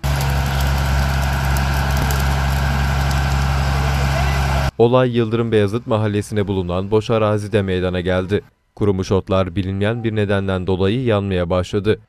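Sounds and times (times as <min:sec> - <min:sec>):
truck engine idling: 0:00.0 - 0:04.7.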